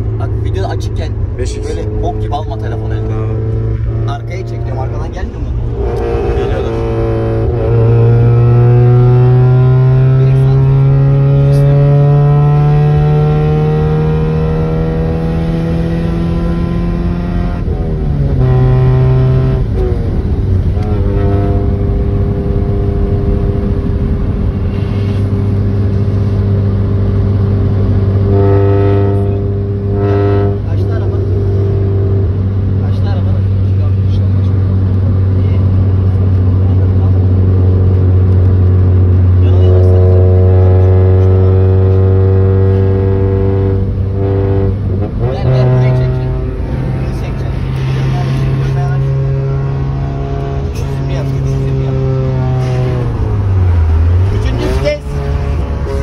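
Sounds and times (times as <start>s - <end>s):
car engine accelerating: 0.0s - 56.0s.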